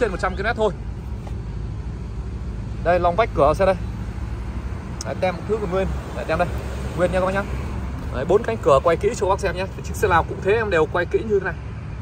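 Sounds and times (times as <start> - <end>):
man speaking: 0.0 - 0.8, 2.8 - 3.8, 5.0 - 11.6
vehicle engine humming: 0.0 - 12.0.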